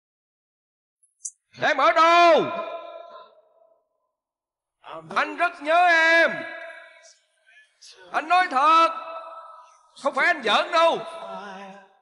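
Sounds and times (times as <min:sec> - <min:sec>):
man shouting: 0:01.7 - 0:03.1
man speaking: 0:04.8 - 0:11.7.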